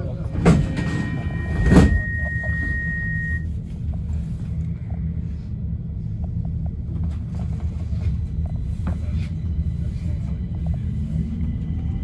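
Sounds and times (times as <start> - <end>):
train low rumble: 0.0 - 12.0
steady high tone: 0.4 - 3.6.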